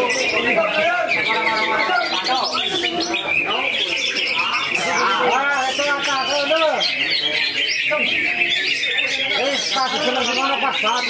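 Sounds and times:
songbirds chirping and warbling: 0:00.0 - 0:11.0
whistled bird song: 0:00.0 - 0:11.0.

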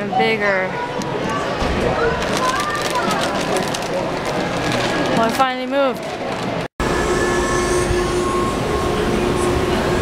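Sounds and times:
crowd noise: 0:00.0 - 0:06.7, 0:08.2 - 0:10.0.

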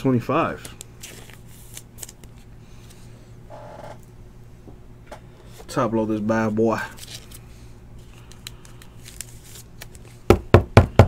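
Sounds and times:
trading cards handling: 0:00.5 - 0:03.1, 0:06.8 - 0:10.3.

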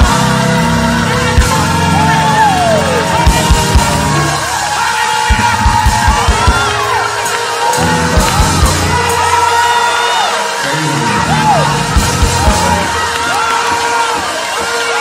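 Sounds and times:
organ holding high note: 0:00.0 - 0:15.0
voices whooping and shouting: 0:01.3 - 0:15.0
bass drum hits: 0:07.8 - 0:09.2, 0:11.0 - 0:13.1.

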